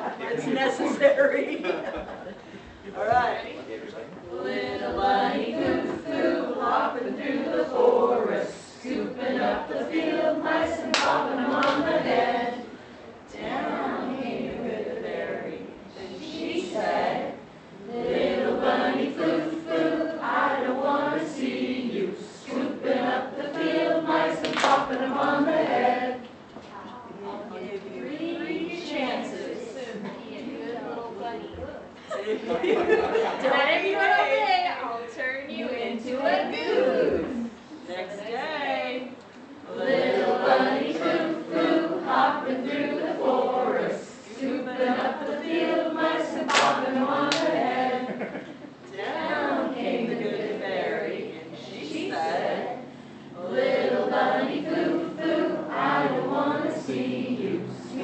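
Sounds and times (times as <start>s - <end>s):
congregation singing: 0.0s - 26.5s, 27.2s - 31.4s, 38.7s - 58.0s.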